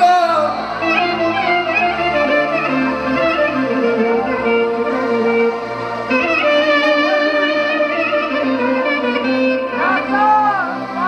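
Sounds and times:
band accompaniment: 0:00.0 - 0:11.0
lead melody with ornaments: 0:00.0 - 0:11.0.

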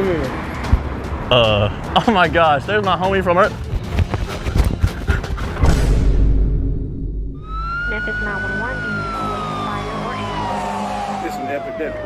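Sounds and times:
background music: 0:00.0 - 0:12.0
siren wailing: 0:07.4 - 0:12.0.

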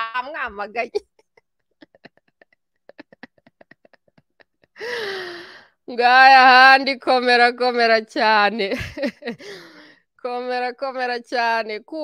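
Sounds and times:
woman sighing breathily: 0:04.8 - 0:05.8.

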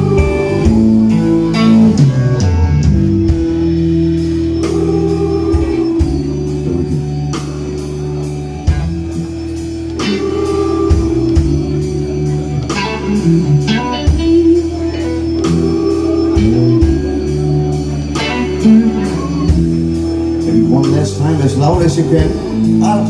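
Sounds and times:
bass guitar: 0:00.0 - 0:23.0
drum kit beat: 0:00.0 - 0:23.0
electric guitar: 0:00.0 - 0:23.0
organ: 0:00.0 - 0:23.0.

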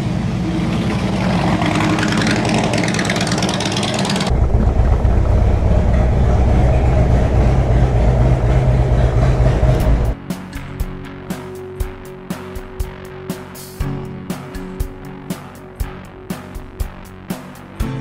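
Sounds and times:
motorcycle engine idling: 0:01.6 - 0:10.2.

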